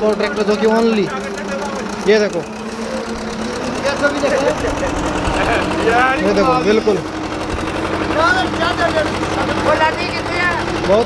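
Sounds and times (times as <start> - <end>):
diesel tractor engine chugging: 0.0 - 11.0.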